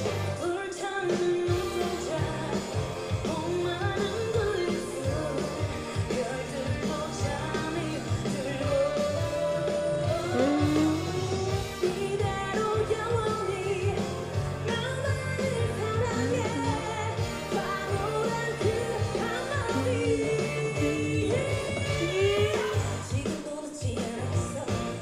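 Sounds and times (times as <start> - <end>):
female group singing pop: 0.0 - 25.0
pop backing music: 0.0 - 25.0.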